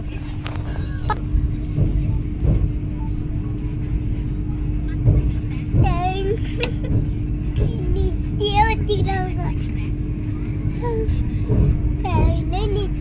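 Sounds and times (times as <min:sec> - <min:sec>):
train rumble and hum: 0:00.0 - 0:13.0.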